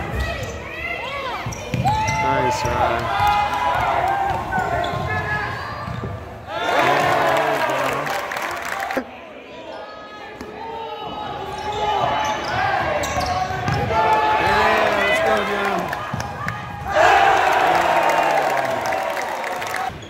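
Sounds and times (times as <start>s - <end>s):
spectators shouting: 6.5s - 9.0s, 13.8s - 20.0s.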